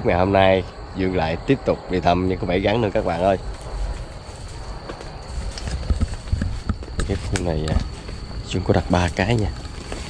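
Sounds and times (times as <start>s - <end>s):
high-pitched insect drone: 0.0s - 10.0s
footsteps through grass and leaves: 3.0s - 10.0s.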